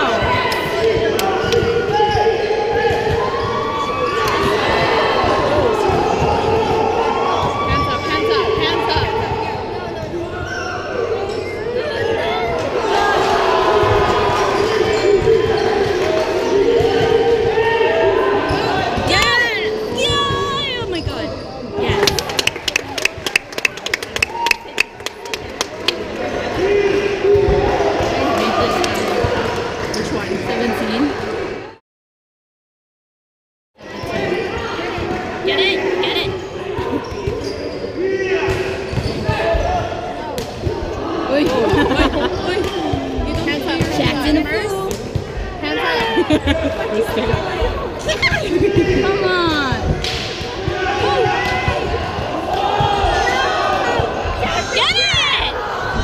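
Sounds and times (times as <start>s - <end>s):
people shouting: 0.0s - 9.5s, 12.0s - 21.1s, 45.6s - 56.0s
voices of players and spectators: 0.0s - 31.8s, 33.8s - 56.0s.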